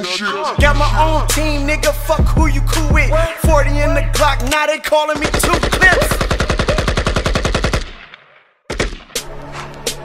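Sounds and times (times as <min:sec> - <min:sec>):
hip hop track: 0:00.0 - 0:06.9
automatic gunfire sound effect: 0:05.2 - 0:08.1.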